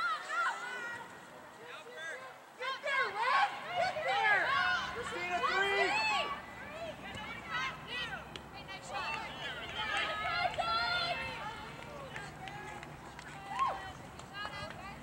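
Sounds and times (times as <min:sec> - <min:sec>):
players shouting and calling: 0:00.0 - 0:15.0.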